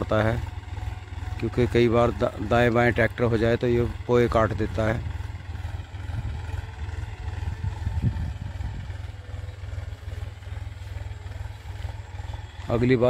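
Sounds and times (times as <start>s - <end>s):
tractor diesel engine drone: 0.0s - 13.0s.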